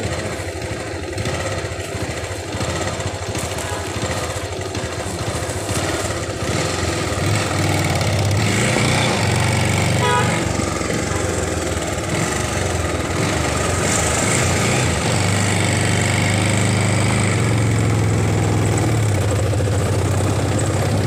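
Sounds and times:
road and wind noise: 0.0 - 21.0
small motorbike engine running: 0.0 - 21.0.

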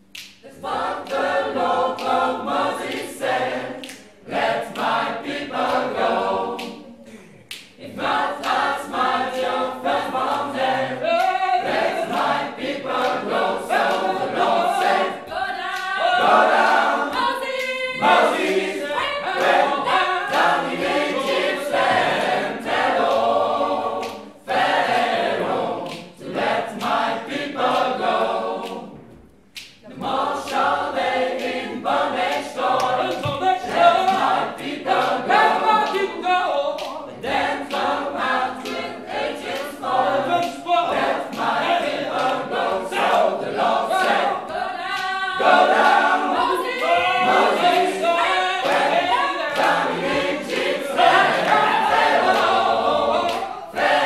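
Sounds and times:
gospel choir singing a cappella: 0.0 - 54.0
hand claps: 0.0 - 54.0.

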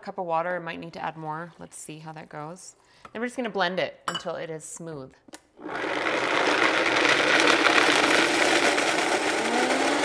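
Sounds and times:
blender grinding: 5.6 - 10.0.

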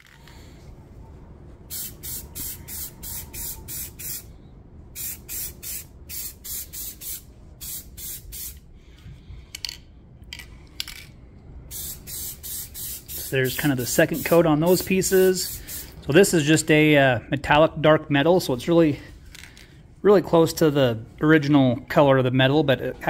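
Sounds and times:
spray paint can hissing: 1.7 - 4.3, 5.0 - 8.6, 11.7 - 16.0.

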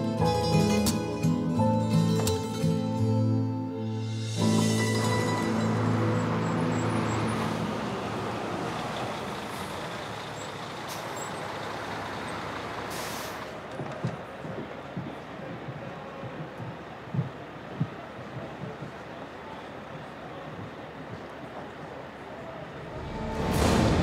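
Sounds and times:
bus engines running: 0.0 - 24.0
traffic noise: 0.0 - 24.0
air brakes hissing: 4.2 - 13.7.

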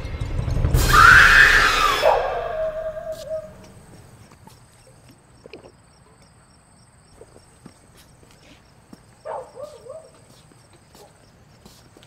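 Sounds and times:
crickets chirping: 1.2 - 12.0.

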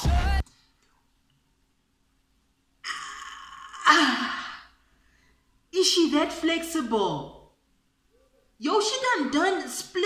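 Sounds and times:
woman gasping: 2.9 - 5.5.

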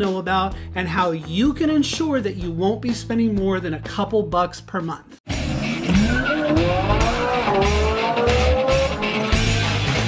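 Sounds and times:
music with pulsing bass beat: 5.3 - 10.0
race car engine accelerating: 5.3 - 10.0.

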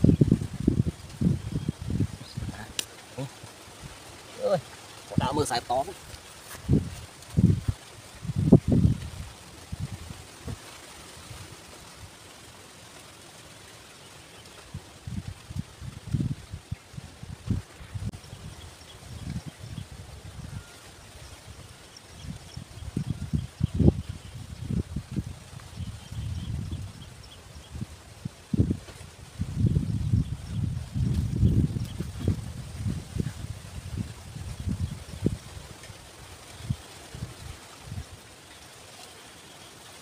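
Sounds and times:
wind buffeting microphone: 0.0 - 11.5, 14.6 - 38.3.

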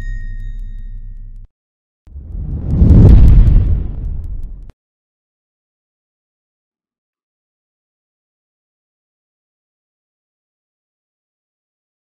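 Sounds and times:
deep rumbling boom: 2.1 - 4.7.

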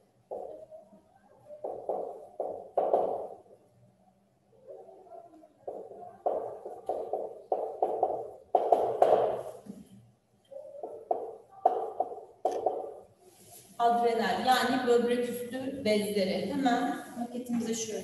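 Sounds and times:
marker squeaking on whiteboard: 1.4 - 3.4, 4.7 - 9.6, 10.4 - 13.1.

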